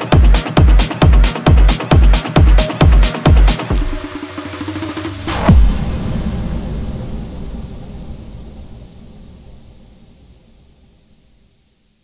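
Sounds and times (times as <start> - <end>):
low rumble impact: 5.2 - 11.5.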